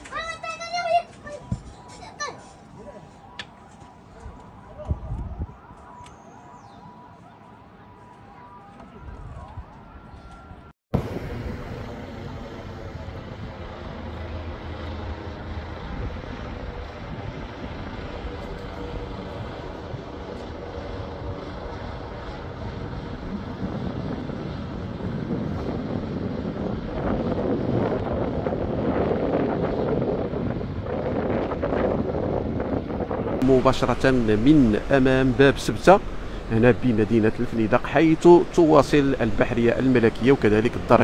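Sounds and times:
helicopter engine and rotor: 11.0 - 41.0.

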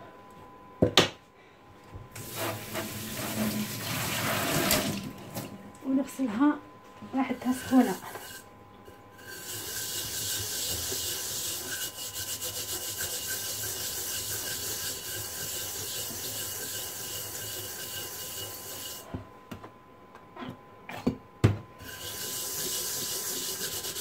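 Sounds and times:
scrubbing metal pan: 7.4 - 8.4, 9.2 - 19.0, 21.8 - 24.0.

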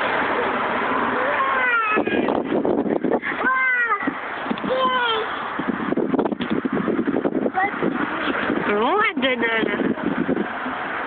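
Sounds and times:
steady rushing background noise: 0.0 - 11.0
small child squealing: 1.2 - 2.3, 4.7 - 5.3.

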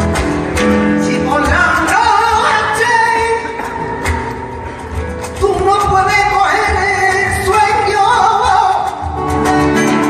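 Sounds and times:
band with electric guitars and bass: 0.0 - 10.0
woman singing flamenco: 0.0 - 10.0.

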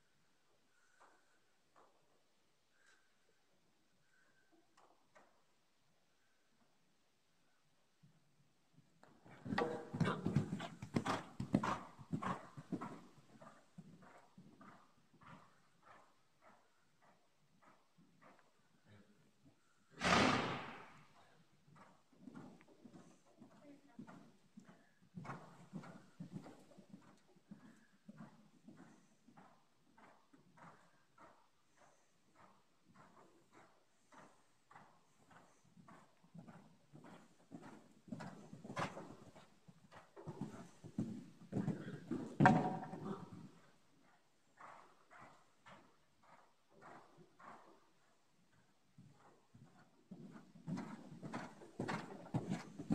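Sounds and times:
horse hoofbeats on soft dirt: 8.7 - 19.6, 20.5 - 52.9.

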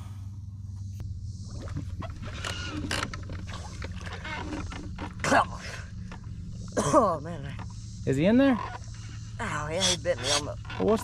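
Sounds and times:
boat motor humming: 0.0 - 11.0.

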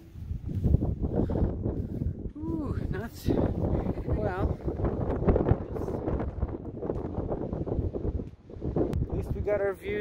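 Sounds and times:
wind gusting on microphone: 0.0 - 10.0.

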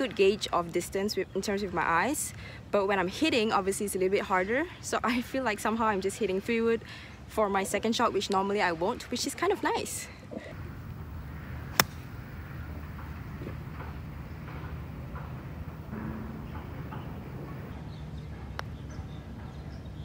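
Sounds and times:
low outdoor rumble: 10.5 - 19.4
golf club striking ball: 11.0 - 12.9.

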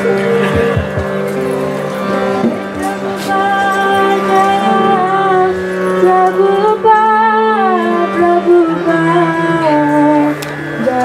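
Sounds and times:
harmonium holding chord: 0.0 - 11.0.

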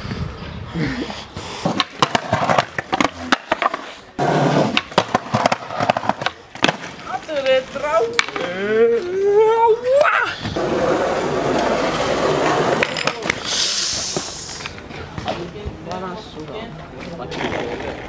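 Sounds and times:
skateboard wheels rolling on pavement: 0.0 - 18.0
skateboard pops and tail slaps: 1.7 - 3.9, 4.5 - 7.0.

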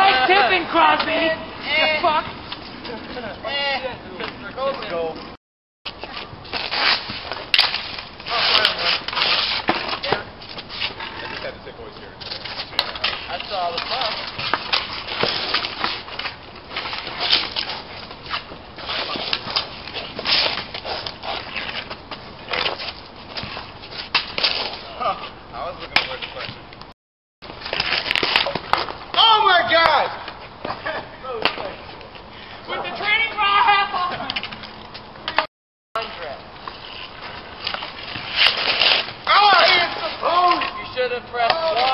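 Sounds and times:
hockey sticks clacking on pavement: 0.0 - 41.9
players shouting: 29.1 - 30.2, 39.2 - 41.9.

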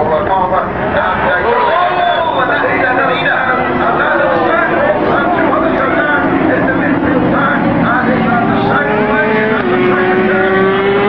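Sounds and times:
racing motorcycle engines revving: 0.0 - 11.0.

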